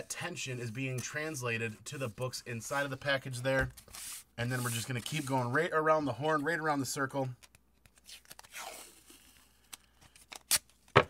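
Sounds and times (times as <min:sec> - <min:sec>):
tape tearing snaps: 0:09.7 - 0:11.0.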